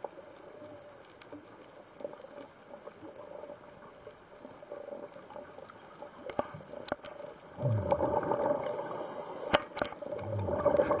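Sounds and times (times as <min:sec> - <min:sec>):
bubbling gurgle of exhaled air: 0:07.5 - 0:11.0
regulator inhalation hiss: 0:08.6 - 0:09.8.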